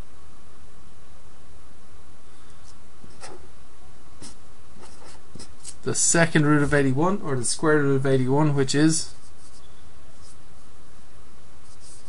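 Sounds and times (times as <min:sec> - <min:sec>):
steady background hiss: 0:00.0 - 0:12.0
scratchy pen strokes: 0:04.2 - 0:05.8, 0:09.1 - 0:10.4, 0:11.6 - 0:12.0.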